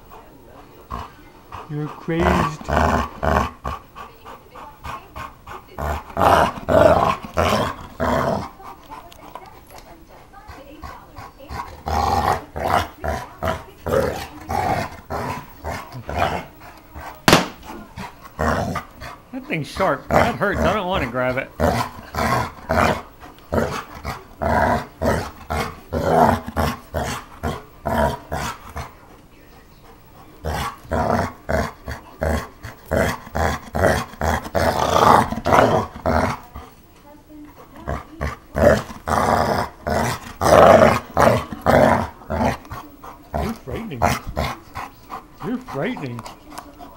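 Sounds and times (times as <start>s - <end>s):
dog play-growling: 0.0s - 46.9s.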